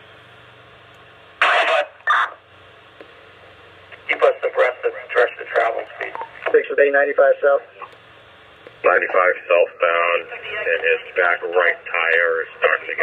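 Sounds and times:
radio channel hiss: 1.2s - 13.0s
clipped radio voices: 1.4s - 2.4s, 3.9s - 8.0s, 8.6s - 13.0s
loud radio noise bursts: 1.4s - 2.4s, 3.9s - 7.9s, 8.8s - 13.0s.

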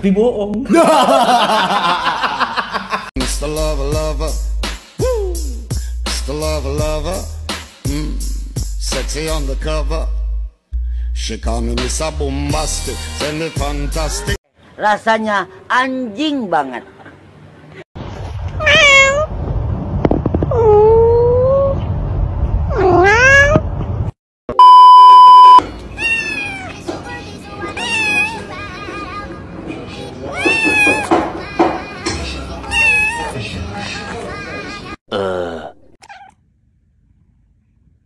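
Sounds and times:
kitten meowing: 18.6s - 19.3s, 20.5s - 21.8s, 22.7s - 23.6s, 26.0s - 26.8s, 27.8s - 28.4s, 30.3s - 31.1s, 32.7s - 33.4s, 36.0s - 36.4s
low rumble: 19.2s - 24.1s
loud electronic beep: 24.6s - 25.6s.

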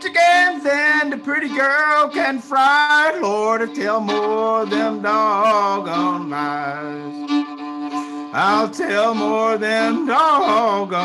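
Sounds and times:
man singing: 0.0s - 7.5s, 8.2s - 11.0s
fiddle double-stop drone: 0.0s - 11.0s.

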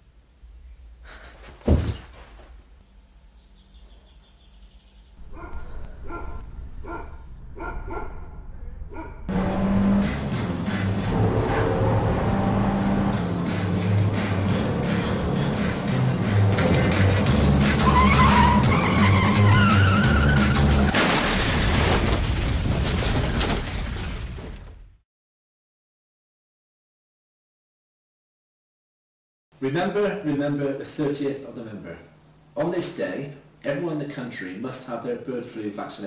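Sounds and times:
car engine running hard: 9.3s - 18.8s
music: 9.8s - 20.9s
tyres squealing: 17.4s - 20.9s.

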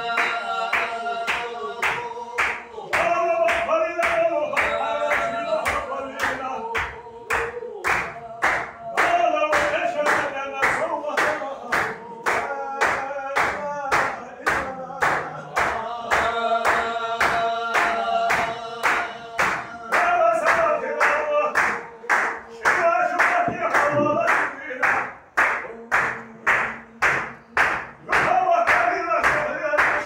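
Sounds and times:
men chanting in unison: 0.0s - 30.0s
rhythmic clapping: 0.0s - 30.0s.

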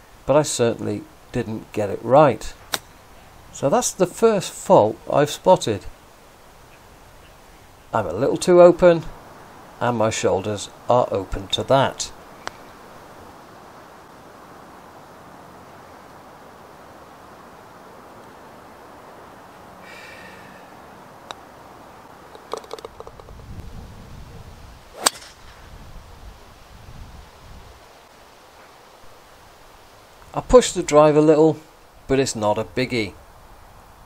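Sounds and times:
steady outdoor hiss: 0.0s - 34.0s
putter striking golf ball: 22.3s - 23.3s, 25.0s - 25.4s.

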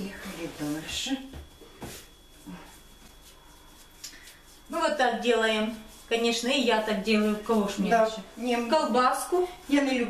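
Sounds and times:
woman speaking: 0.0s - 1.5s, 4.7s - 10.0s
faint high whine: 0.0s - 10.0s.

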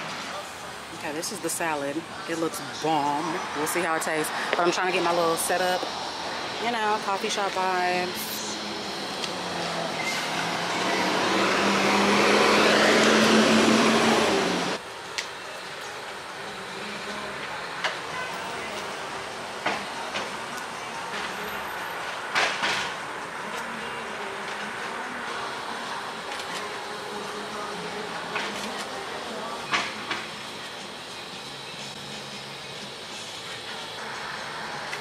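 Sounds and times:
street background: 0.0s - 35.0s
vehicle engine and road noise: 0.0s - 35.0s.

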